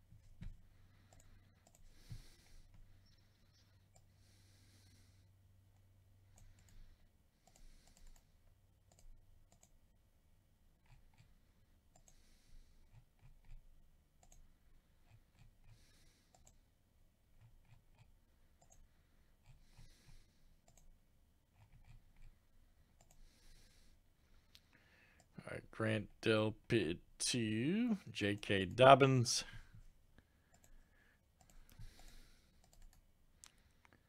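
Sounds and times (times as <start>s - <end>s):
faint computer mouse clicks: 7.4s - 8.3s, 8.9s - 9.8s, 23.0s - 23.2s, 31.4s - 34.0s.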